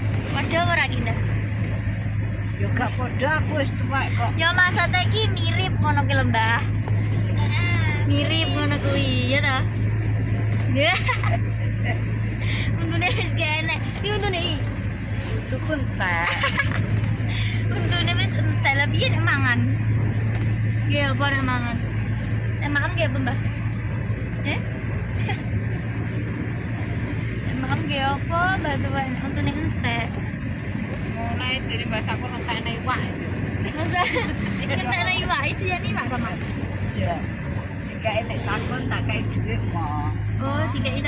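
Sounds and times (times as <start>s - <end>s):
car interior drone: 0.0s - 41.0s
voices talking: 0.0s - 41.0s.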